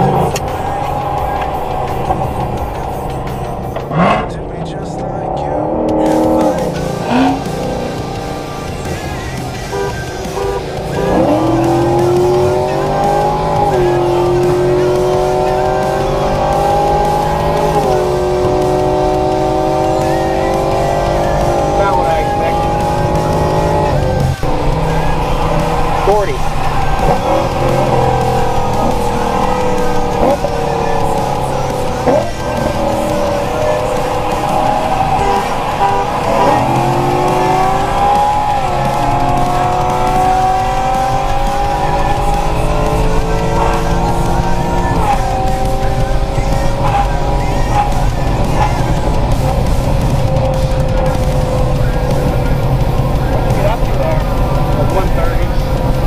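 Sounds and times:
car engine accelerating: 0.0s - 56.0s
road and wind noise: 0.0s - 56.0s.

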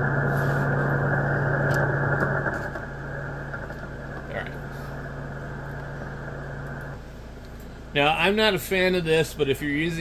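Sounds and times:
radio static hiss: 0.0s - 7.2s
low hum: 0.0s - 7.9s.

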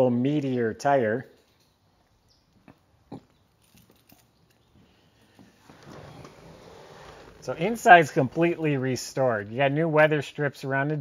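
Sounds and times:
faint steady hiss: 4.7s - 11.0s.

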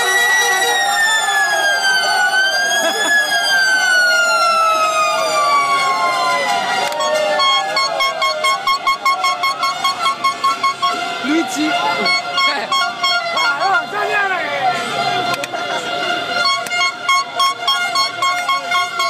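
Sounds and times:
siren-like horn blast: 0.0s - 14.2s, 14.9s - 19.0s
crowd shouting: 0.0s - 19.0s
rapid rhythmic horn honking: 0.0s - 19.0s.

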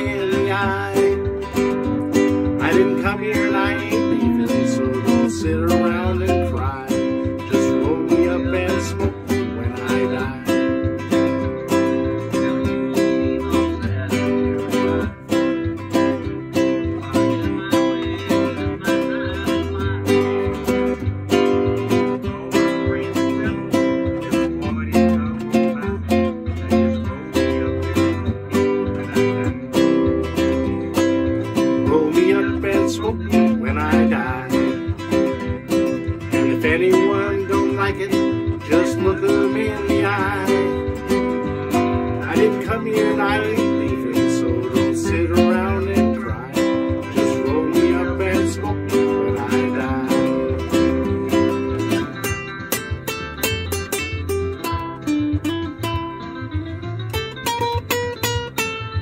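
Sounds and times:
guitar strummed: 0.0s - 59.0s
recorded country music: 0.0s - 59.0s.

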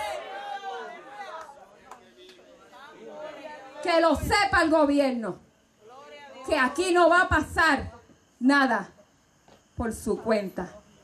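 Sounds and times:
congregation praying aloud: 0.0s - 4.7s.

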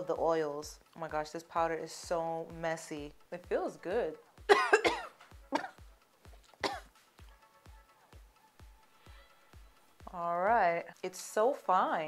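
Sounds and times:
background music with steady beat: 0.0s - 12.0s
woman coughing: 4.5s - 5.8s, 6.6s - 6.9s.

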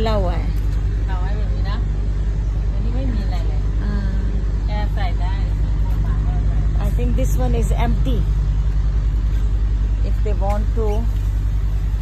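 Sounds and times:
quiet talking: 0.0s - 8.5s
engine droning: 0.0s - 12.0s.

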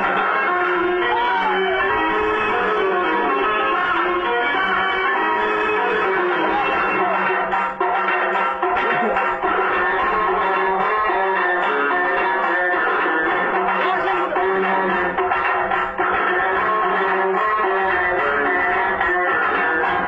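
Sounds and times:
plucked string music: 0.0s - 20.0s.

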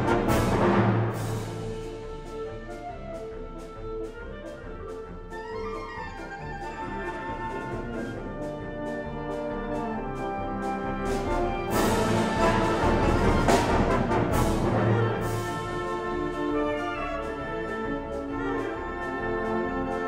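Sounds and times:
wind band playing a march: 0.0s - 20.0s.

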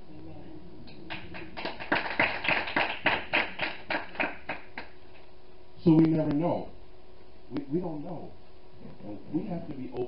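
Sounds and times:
hand clapping: 1.1s - 5.0s.

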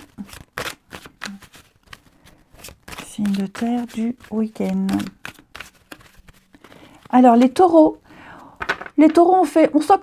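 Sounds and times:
cards being shuffled: 0.0s - 7.8s.

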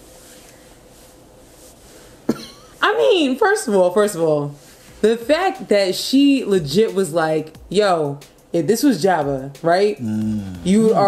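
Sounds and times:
short cough: 2.3s - 2.7s.

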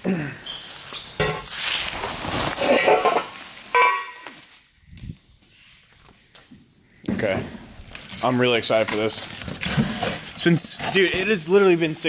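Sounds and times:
bubble wrap crumpled by hand: 0.1s - 4.7s
sharp squeaky crinkle: 0.4s - 4.6s.

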